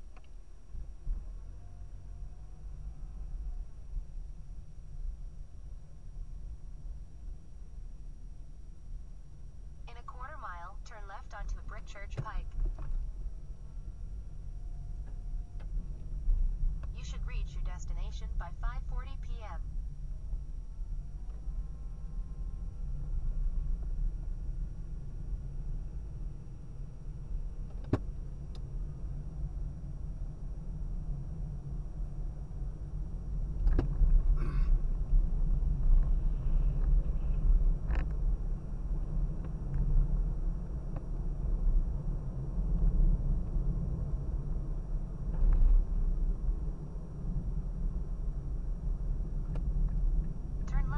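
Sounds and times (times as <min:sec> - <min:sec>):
car road and engine rumble: 0:00.0 - 0:50.9.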